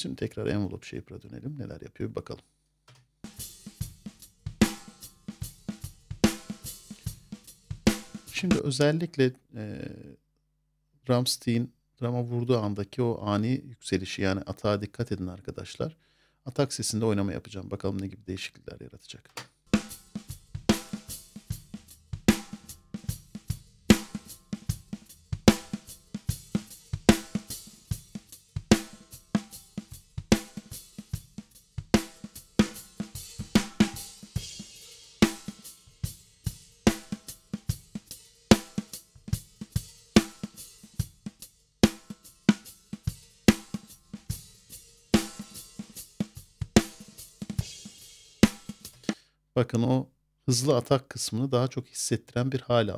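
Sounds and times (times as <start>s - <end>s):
rock drum beat: 3.2s - 8.6s, 19.6s - 49.2s.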